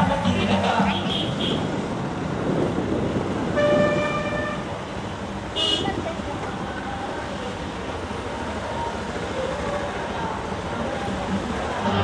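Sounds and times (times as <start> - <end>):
road noise from slow cars: 0.0 - 12.0
vehicle horn honking: 0.9 - 1.6, 3.6 - 4.7, 5.6 - 5.9.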